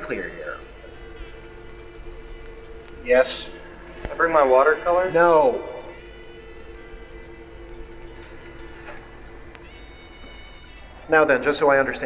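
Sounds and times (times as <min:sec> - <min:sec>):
faint hum: 0:00.0 - 0:12.0
low two-pitch drone: 0:00.0 - 0:12.0
faint ticks: 0:00.8 - 0:04.2, 0:05.8 - 0:11.0.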